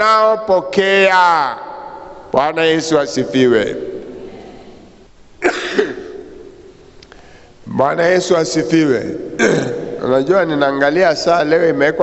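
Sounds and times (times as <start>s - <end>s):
man coughing: 5.4s - 6.2s, 9.4s - 10.0s.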